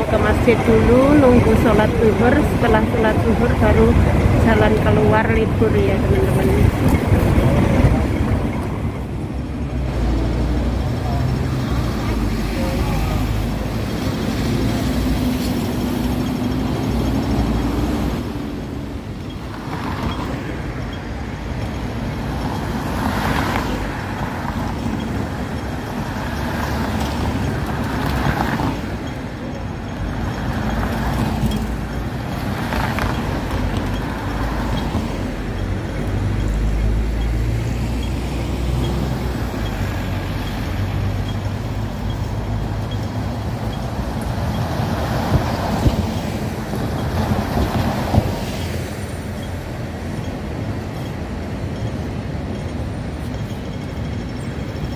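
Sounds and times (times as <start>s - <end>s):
buses and cars passing: 0.0s - 54.9s.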